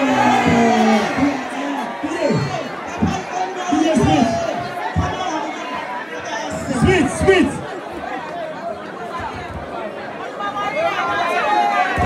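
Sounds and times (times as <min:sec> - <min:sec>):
crowd talking: 0:00.0 - 0:12.0
person speaking loudly: 0:06.5 - 0:07.6.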